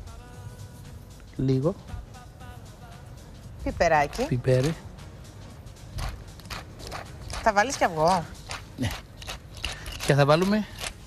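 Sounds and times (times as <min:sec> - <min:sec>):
pepper mill grinding: 0:06.0 - 0:11.0.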